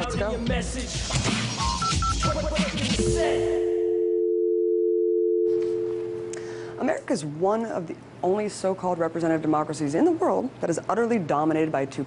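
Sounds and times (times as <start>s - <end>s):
telephone dial tone: 3.6s - 6.8s.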